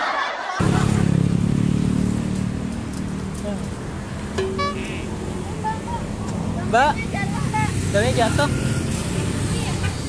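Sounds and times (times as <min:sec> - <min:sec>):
motor vehicle engine running: 0:00.6 - 0:07.5.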